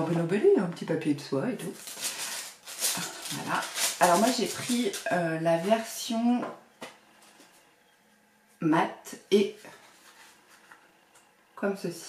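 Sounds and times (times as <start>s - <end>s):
tissue paper crinkling: 1.6s - 6.0s.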